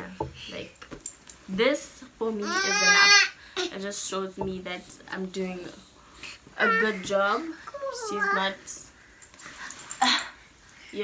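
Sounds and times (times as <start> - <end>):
toddler yelping: 6.6 - 8.6.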